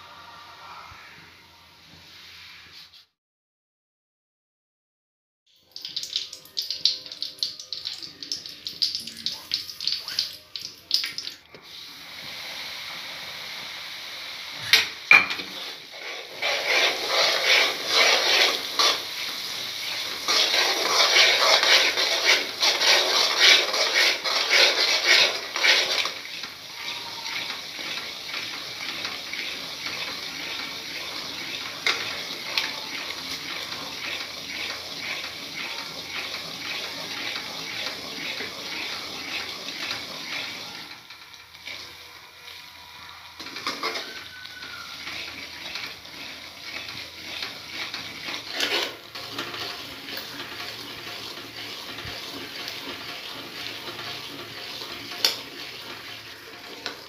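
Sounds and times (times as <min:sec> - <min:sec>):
hot pan sizzling: 0:05.6 - 0:57.0
ladle stirring and scraping pan: 0:14.6 - 0:42.0, 0:43.4 - 0:57.0.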